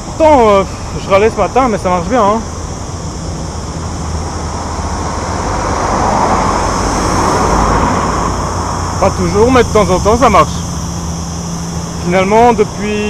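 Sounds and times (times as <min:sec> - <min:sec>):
vehicle driving past: 0:03.0 - 0:12.8.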